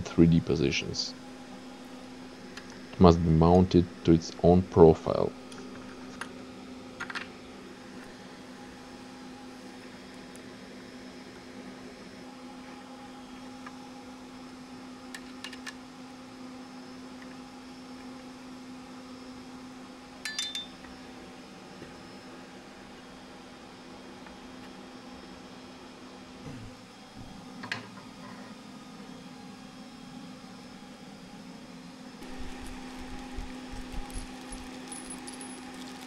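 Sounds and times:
steady low hum: 0.0 - 6.8, 30.7 - 36.0
metal parts clicking and clinking: 32.2 - 36.0.

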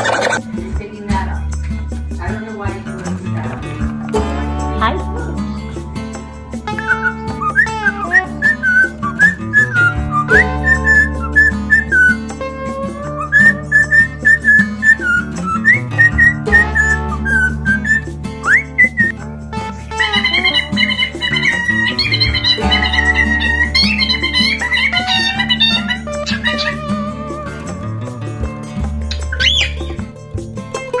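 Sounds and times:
background music: 0.0 - 31.0
cockatiel whistling: 6.7 - 12.3, 13.1 - 19.2, 20.0 - 26.9, 29.1 - 30.0.

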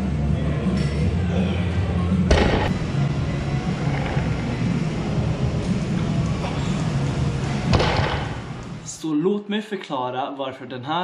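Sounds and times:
low rumble: 2.3 - 8.8
barbell thud on rubber floor: 7.7 - 8.5.

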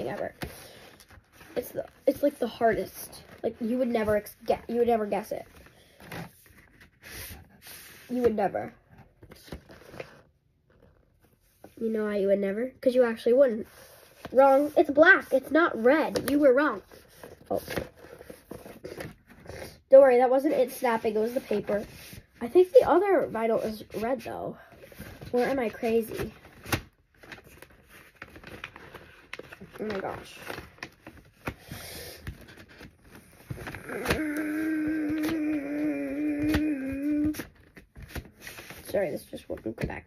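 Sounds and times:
paper rustling and crinkling: 13.6 - 19.7, 20.8 - 39.8
paper sleeve rustling: 24.8 - 31.5
girl humming a held note: 33.9 - 37.4.

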